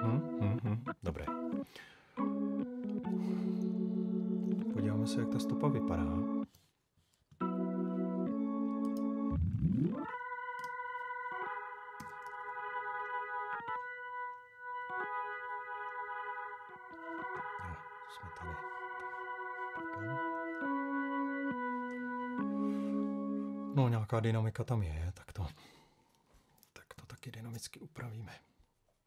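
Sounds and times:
electric piano chords: 0:00.0 - 0:06.5, 0:07.4 - 0:23.8.

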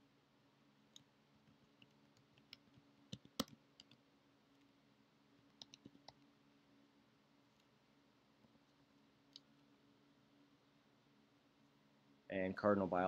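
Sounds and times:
faint steady low hum: 0:00.0 - 0:13.0
computer keyboard keystrokes: 0:01.8 - 0:04.0, 0:05.6 - 0:06.2.

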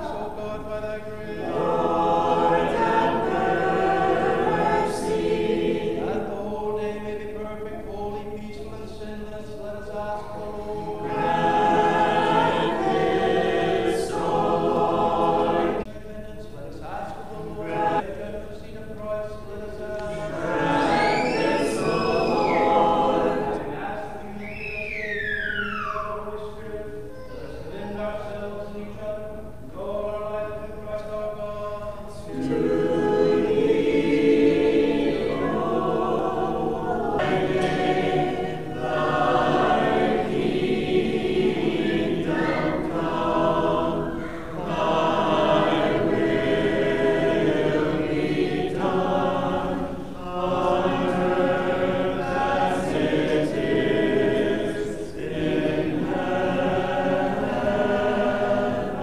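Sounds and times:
choir singing a cappella chant: 0:00.0 - 0:59.0.

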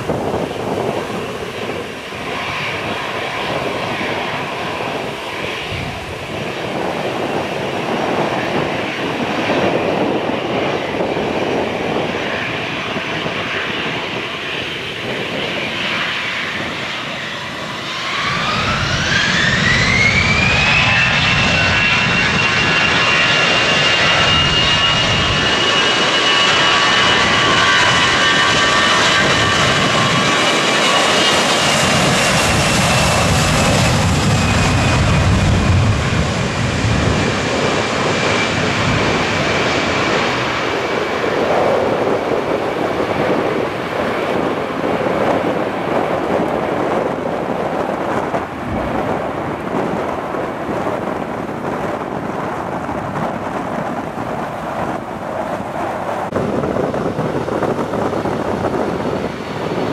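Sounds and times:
jet engines spooling up: 0:00.0 - 0:59.9.

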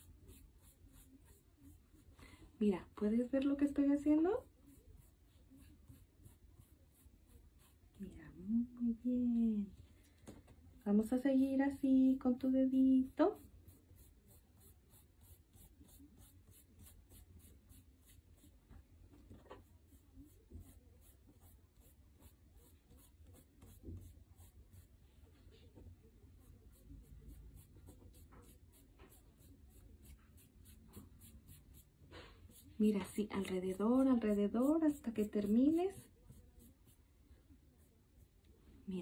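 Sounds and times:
fingertips rubbing chalk on paper: 0:00.0 - 0:02.2, 0:03.6 - 0:08.1, 0:12.4 - 0:38.4
soft touches on paper: 0:00.0 - 0:39.0.

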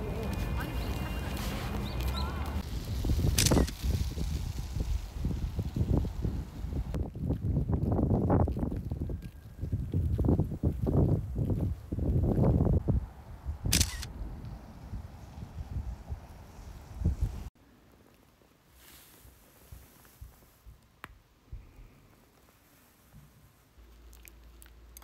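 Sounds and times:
wind on microphone: 0:00.0 - 0:17.5
camera shutter clicking: 0:03.4 - 0:03.8, 0:13.7 - 0:14.1.

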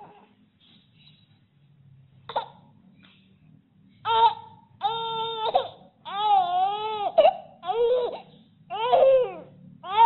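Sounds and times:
baby crying: 0:00.0 - 0:00.3, 0:04.0 - 0:10.0.

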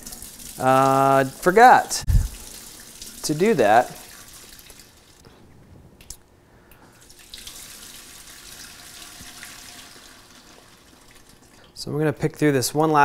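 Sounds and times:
liquid trickling and dripping: 0:00.0 - 0:05.2, 0:06.0 - 0:11.8.

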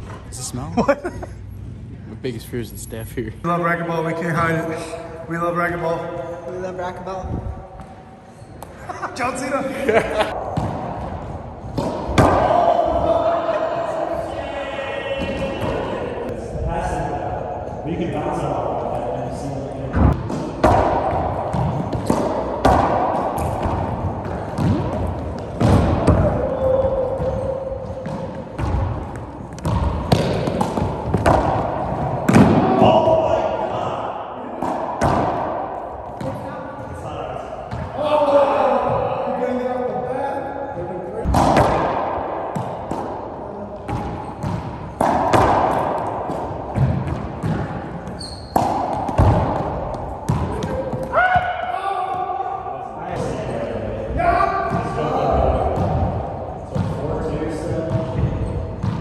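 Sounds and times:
racquets striking ball: 0:10.3 - 0:13.1, 0:20.0 - 0:33.8, 0:34.6 - 0:36.5, 0:41.2 - 0:52.3, 0:54.7 - 0:57.2, 0:57.9 - 0:59.0
racquetball hitting walls: 0:10.3 - 0:14.1, 0:15.0 - 0:16.3, 0:19.9 - 0:39.1, 0:41.2 - 0:53.4, 0:54.6 - 0:59.0.

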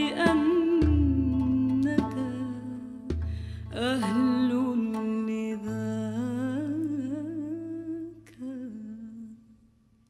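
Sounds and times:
woman singing unaccompanied: 0:00.0 - 0:09.5.

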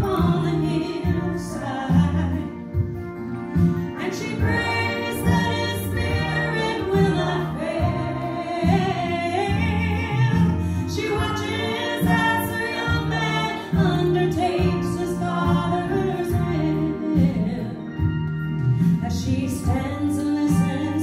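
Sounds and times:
woman singing gospel song: 0:00.0 - 0:02.8, 0:04.0 - 0:18.0, 0:19.0 - 0:21.0
instrumental accompaniment with bass: 0:00.0 - 0:21.0.

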